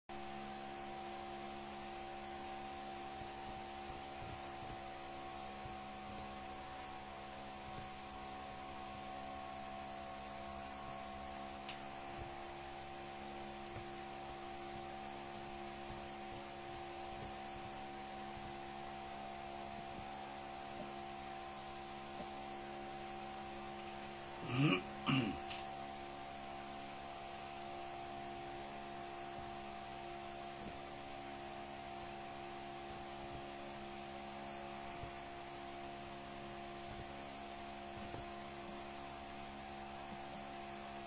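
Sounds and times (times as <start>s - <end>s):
fan hum with hiss: 0.1s - 41.0s.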